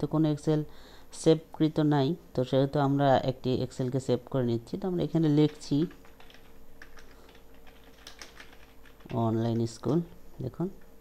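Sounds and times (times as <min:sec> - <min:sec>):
keyboard typing: 0:05.2 - 0:10.2.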